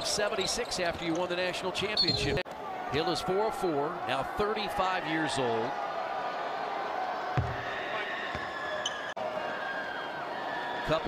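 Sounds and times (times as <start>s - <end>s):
murmur of arena crowd: 0.0s - 11.0s
basketball bouncing on hardwood: 7.4s - 7.7s.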